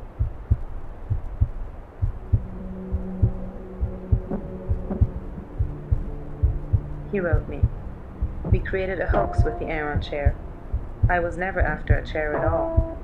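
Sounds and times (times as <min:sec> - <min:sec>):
low heartbeat-like pulse: 0:00.0 - 0:13.0
low drone chord: 0:02.2 - 0:11.1, 0:12.3 - 0:13.0.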